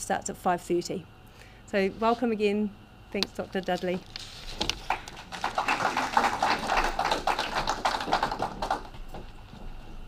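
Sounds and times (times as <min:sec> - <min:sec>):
audience clapping: 0:04.7 - 0:09.3.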